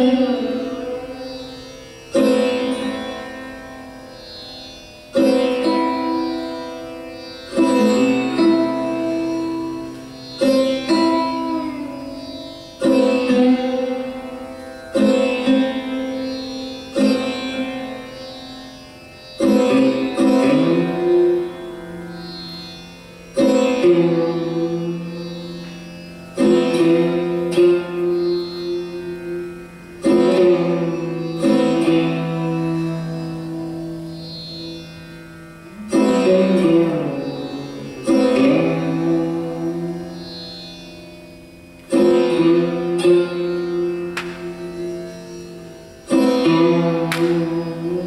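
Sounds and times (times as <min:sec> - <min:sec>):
sarod plucked notes: 0:00.0 - 0:48.0.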